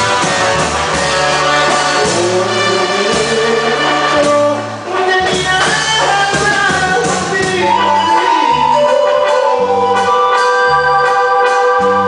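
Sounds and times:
drum hits: 0.0s - 10.0s
bass notes: 0.0s - 12.0s
electronic keyboard chord: 5.5s - 12.0s.

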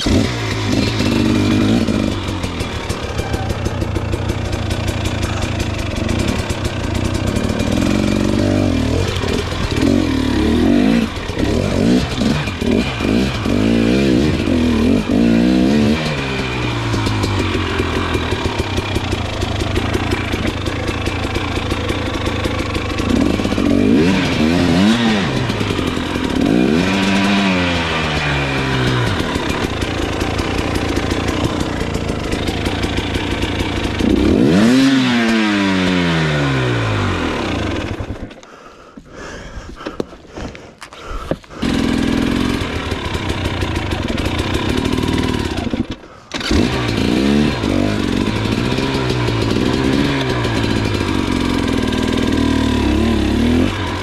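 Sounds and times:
dirt bike engine revving: 0.0s - 38.4s, 41.5s - 54.0s.

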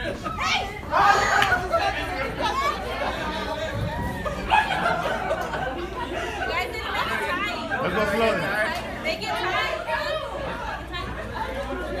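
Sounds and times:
group of people chatting: 0.0s - 12.0s.

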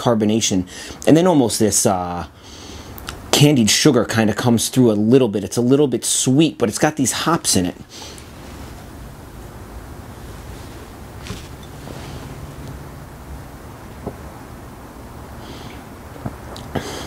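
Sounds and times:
low background hiss and hum: 0.0s - 17.0s
man's mouth sounds tasting: 16.5s - 17.0s.

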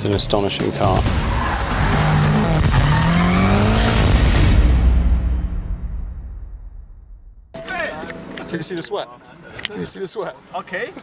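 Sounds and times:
tyre and road noise: 0.7s - 4.8s
car engine accelerating: 1.1s - 4.7s.

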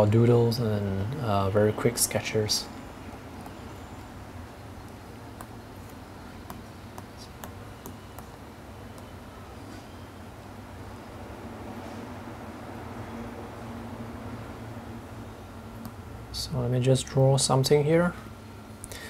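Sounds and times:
low room hum: 0.0s - 19.0s
stylus tapping on glass screen: 5.4s - 9.1s.

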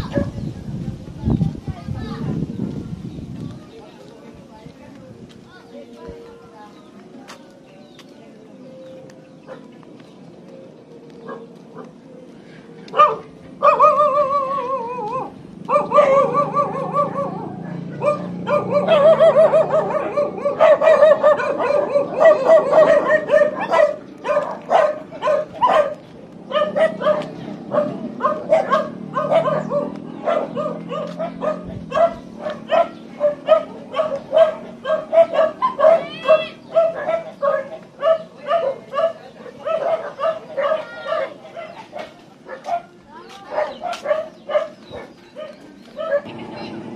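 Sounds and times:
dog barking: 11.3s - 11.9s, 12.9s - 46.3s.

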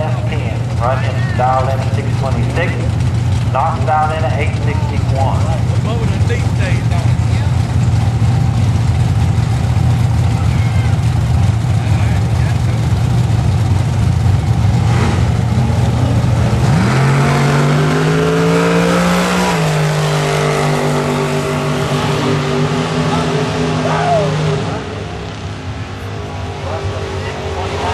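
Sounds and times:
car engine revving: 0.0s - 27.9s.

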